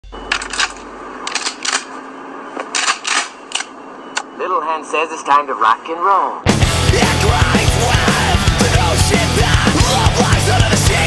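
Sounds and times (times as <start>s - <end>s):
low hum: 0.0s - 4.4s.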